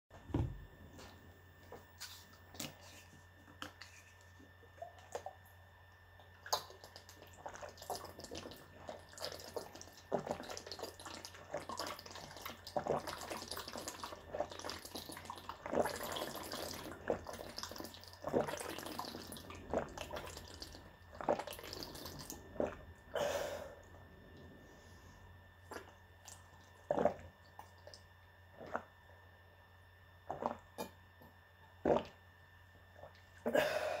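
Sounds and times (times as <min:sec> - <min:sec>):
water gurgling in bottle: 0:06.2 - 0:23.1, 0:25.7 - 0:28.0
person gulping water: 0:06.2 - 0:24.0, 0:25.6 - 0:28.9, 0:30.2 - 0:31.0, 0:31.8 - 0:32.2.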